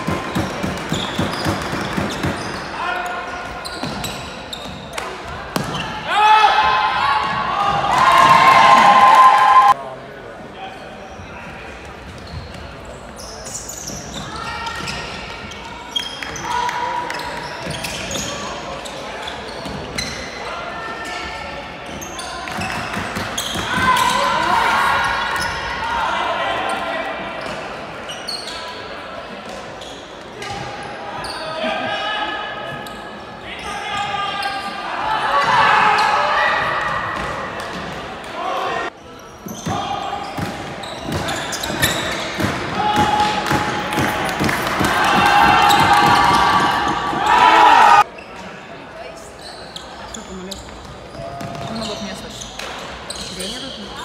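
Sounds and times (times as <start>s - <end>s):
sneakers squeaking on hardwood: 0.0s - 6.1s, 11.9s - 20.4s, 21.8s - 25.8s, 27.4s - 28.8s, 29.8s - 31.5s, 39.0s - 48.6s, 49.4s - 54.0s
players shouting: 5.6s - 9.8s, 41.1s - 48.1s.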